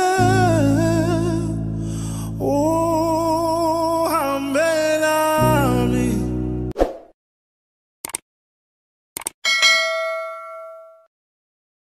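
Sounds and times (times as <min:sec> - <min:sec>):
notification bell ding: 0:09.5 - 0:11.1.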